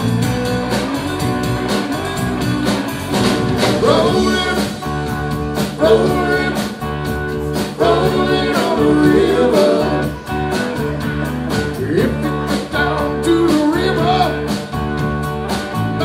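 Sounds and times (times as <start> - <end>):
bass guitar: 0.0 - 16.0
drum kit beat: 0.0 - 16.0
electric guitar: 0.0 - 16.0
man singing: 3.6 - 10.9, 11.5 - 14.7.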